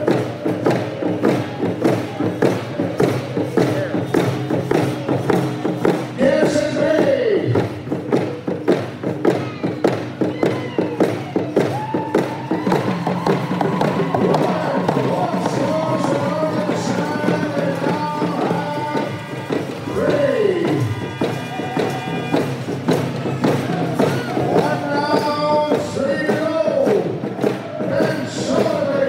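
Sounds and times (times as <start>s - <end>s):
hand drums beating: 0.0s - 29.0s
group of voices singing: 13.0s - 29.0s.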